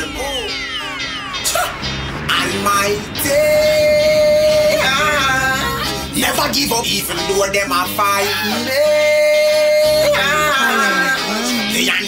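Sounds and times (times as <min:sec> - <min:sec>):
person singing: 0:00.0 - 0:12.0
reggae backing track: 0:00.0 - 0:12.0.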